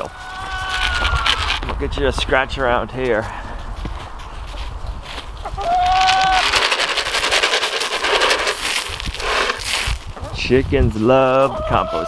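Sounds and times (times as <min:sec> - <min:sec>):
chicken feed pattering on ground: 0:00.0 - 0:12.0
chicken call: 0:05.4 - 0:06.6.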